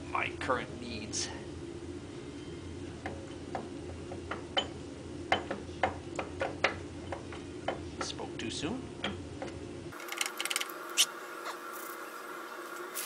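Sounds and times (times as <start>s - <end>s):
steady low hum: 0.0s - 12.9s.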